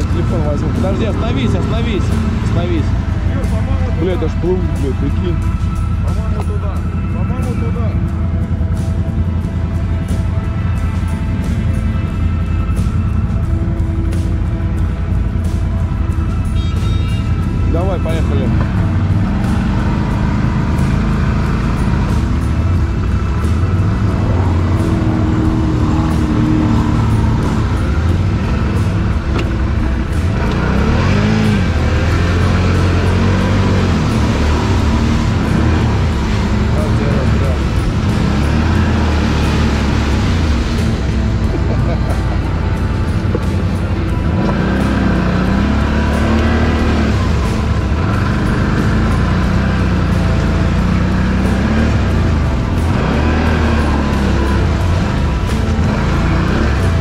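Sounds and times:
atv engine revving: 0.0s - 57.0s.

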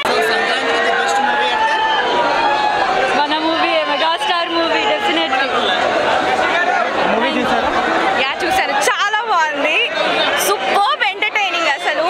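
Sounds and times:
crowd murmur: 0.0s - 12.0s
people talking over one another: 0.0s - 12.0s.

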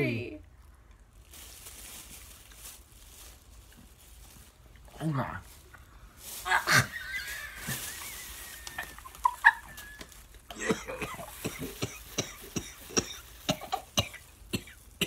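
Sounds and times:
bags clicking and crackling: 0.6s - 15.0s
people coughing and gagging: 10.5s - 15.0s.

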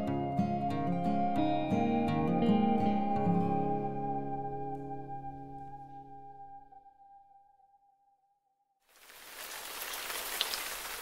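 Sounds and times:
heavy rain on trees and grass: 8.9s - 11.0s.

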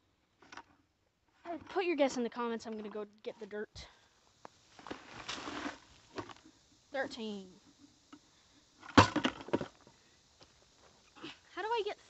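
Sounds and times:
dirt pouring from bucket: 4.7s - 6.5s.

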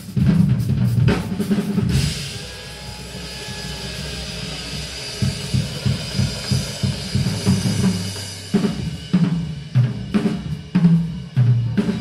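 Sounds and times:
drum hits: 1.1s - 9.4s
low rumble: 2.0s - 9.1s
high hiss: 2.0s - 9.2s.

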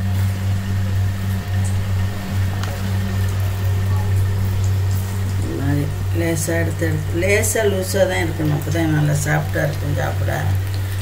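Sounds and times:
steady low hum: 0.0s - 11.0s
faint voices: 0.7s - 10.6s.

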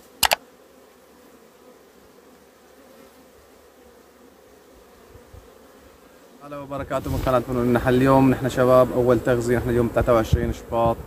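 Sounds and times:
honey bees buzzing: 0.0s - 11.0s
sharp double click: 0.2s - 0.4s.

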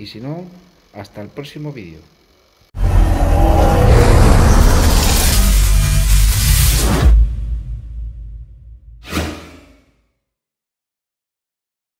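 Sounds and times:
low rumble: 2.8s - 9.0s
whoosh sound effect: 3.5s - 9.8s.

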